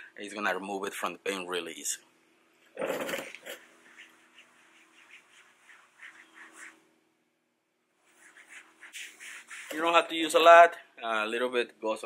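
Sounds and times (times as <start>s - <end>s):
faint steady hum: 0.0s - 12.0s
towel rubbing plastic trim: 8.1s - 10.0s.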